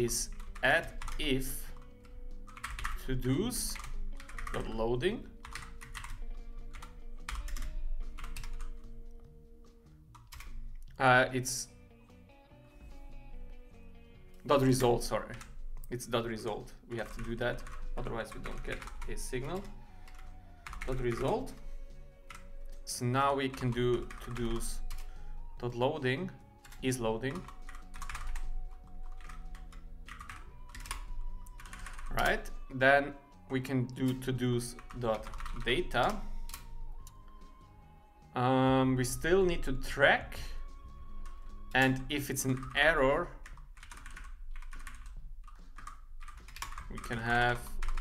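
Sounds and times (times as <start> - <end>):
typing on computer keyboard: 0.2 - 4.8, 5.4 - 8.9, 10.2 - 10.6, 17.0 - 21.6, 23.5 - 25.1, 26.6 - 32.4, 34.1 - 37.2, 43.4 - 48.0.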